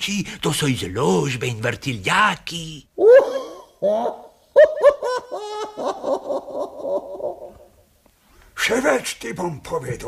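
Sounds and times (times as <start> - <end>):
person laughing: 3.0 - 7.7.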